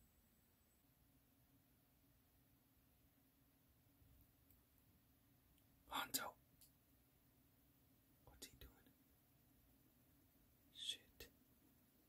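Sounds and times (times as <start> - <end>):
short whispered sound: 10.8 - 11.3.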